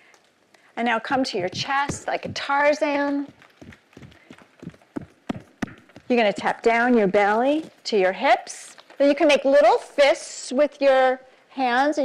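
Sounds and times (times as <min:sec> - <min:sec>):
hands tapping on chests: 0:01.4 - 0:06.5.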